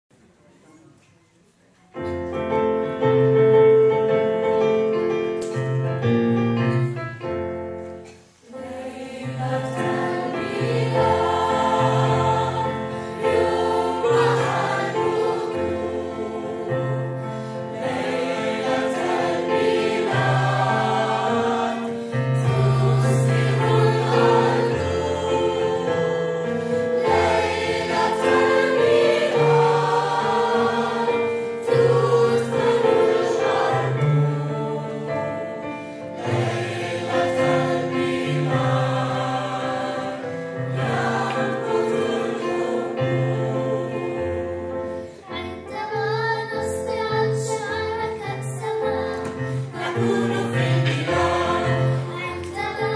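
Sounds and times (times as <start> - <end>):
piano with low bass notes: 2.0 - 8.1
choir singing: 8.4 - 45.1, 45.8 - 52.9.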